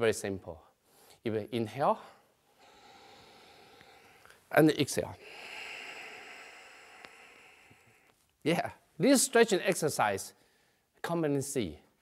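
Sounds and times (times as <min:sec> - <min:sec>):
deep breath exhaling: 0:02.5 - 0:04.4, 0:05.2 - 0:08.2.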